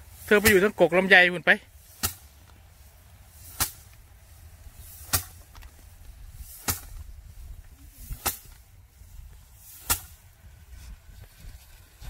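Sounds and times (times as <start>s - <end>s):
sticks whacking rice stalks on board: 0.1s - 0.8s, 1.8s - 7.2s, 7.8s - 8.7s, 9.6s - 10.3s.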